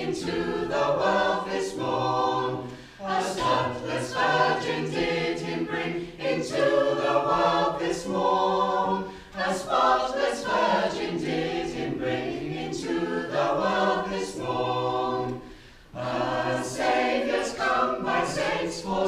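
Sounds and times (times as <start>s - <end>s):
choir singing a cappella: 0.0s - 19.0s.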